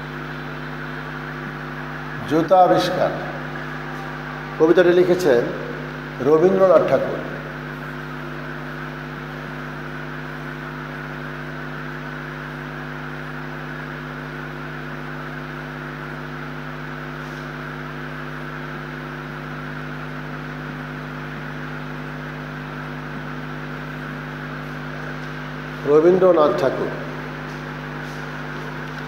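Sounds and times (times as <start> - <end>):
steady multi-tone hum: 0.0 - 29.0.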